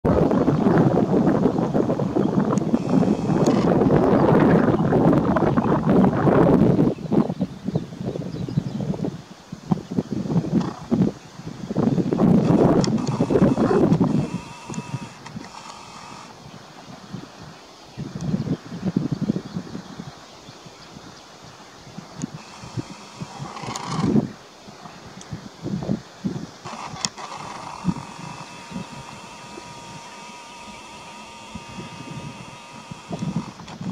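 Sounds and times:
wind buffeting microphone: 0.1 - 20.2, 20.9 - 33.9.

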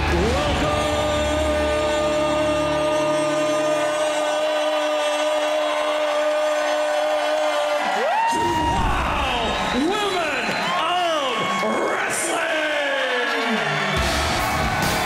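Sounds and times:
background music: 0.0 - 15.0
crowd cheering: 0.0 - 15.0.

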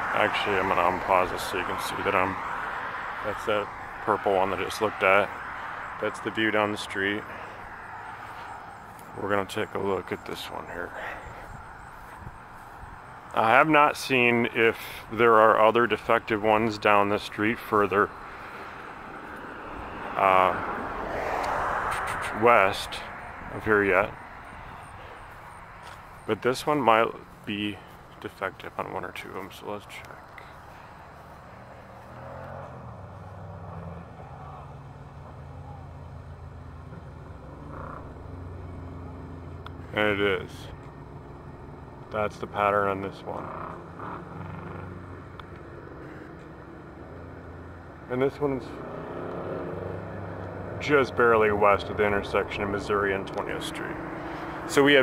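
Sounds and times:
distant vehicle passing: 0.0 - 55.0
street noise: 0.0 - 55.0.

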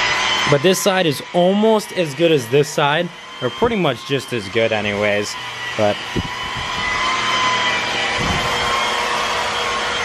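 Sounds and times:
electric polisher motor whine: 0.0 - 10.0.

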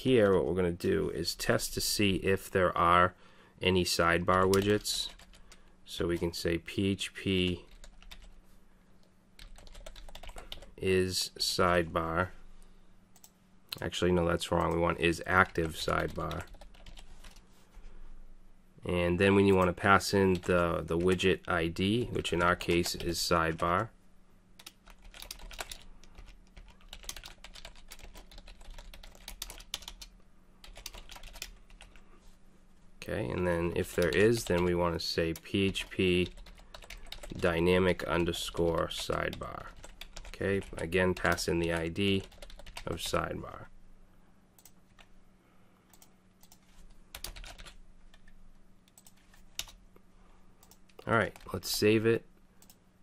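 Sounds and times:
faint low hum: 0.0 - 53.0
typing on computer keyboard: 7.7 - 8.3, 9.4 - 10.7, 15.6 - 17.4, 24.6 - 32.0, 36.2 - 37.4, 38.6 - 41.4, 42.2 - 42.9, 45.9 - 48.3.

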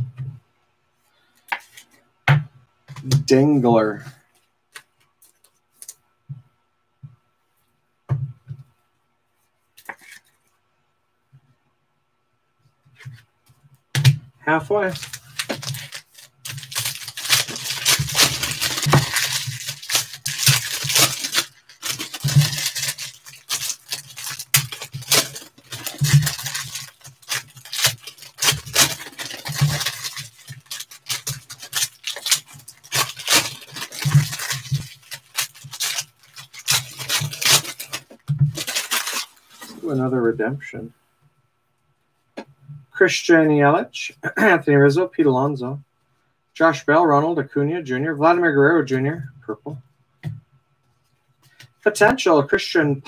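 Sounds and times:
foil wrappers crinkling and tearing: 14.7 - 40.0.

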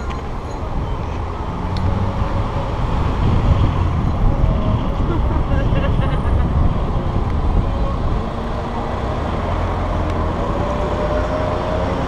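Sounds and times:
car engine rumble: 0.0 - 12.0
road and traffic noise: 0.0 - 12.0.

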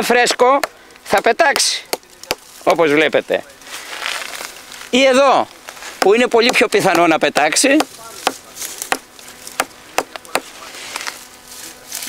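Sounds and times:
taps on tree bark: 0.2 - 2.8, 6.0 - 10.6.

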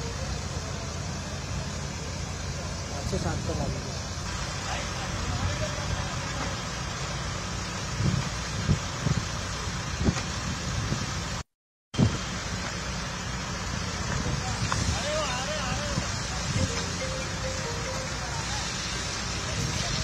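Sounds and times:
diesel construction machinery rumble: 0.0 - 11.4, 12.0 - 20.0.

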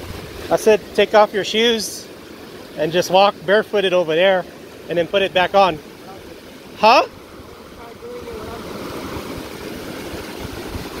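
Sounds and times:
stream rushing over rocks: 0.0 - 11.0
wind rumbling on microphone: 7.1 - 11.0.

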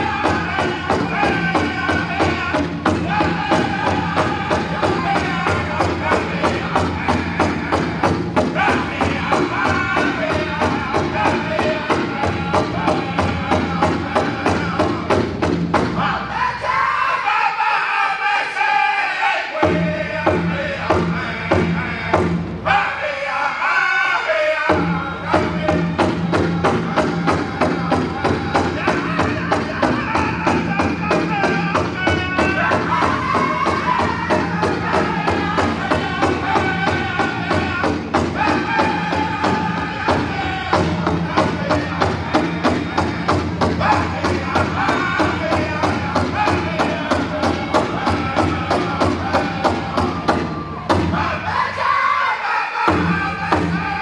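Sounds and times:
big drum beaten: 0.0 - 16.3, 19.6 - 22.8, 24.7 - 51.5, 52.9 - 54.0
high singing voice: 19.5 - 54.0.

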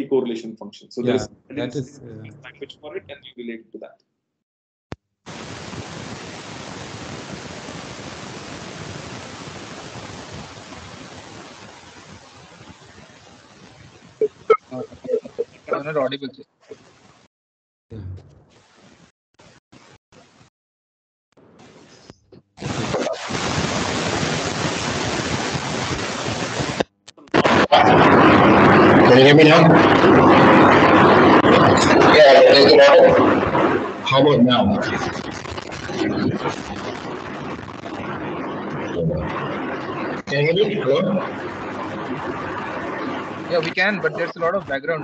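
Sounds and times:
microphone hiss: 0.0 - 3.4, 5.3 - 17.2, 21.4 - 45.0.

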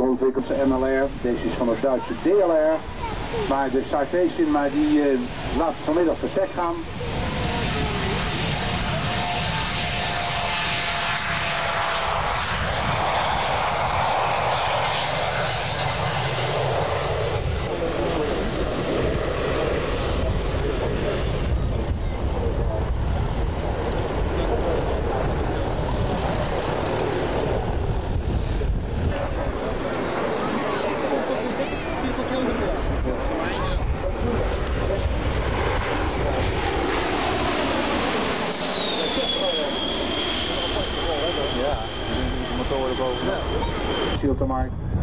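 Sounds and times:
jet engines roaring with high whine: 0.0 - 45.0.

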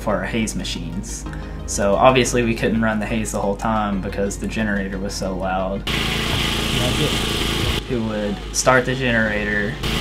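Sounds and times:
portable generator running: 5.8 - 10.0
loud hiss: 5.9 - 7.8, 9.8 - 10.0.

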